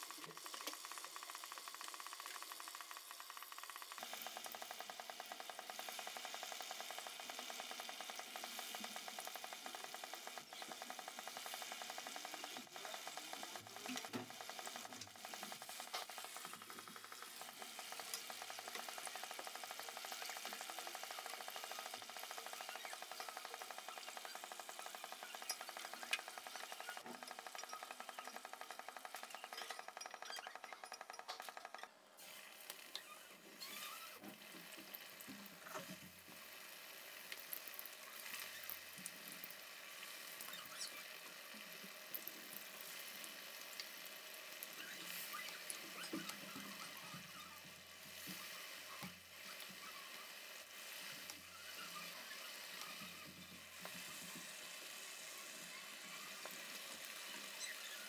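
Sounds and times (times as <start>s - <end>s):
food sizzling in hot oil: 0.0s - 28.5s, 32.3s - 58.0s.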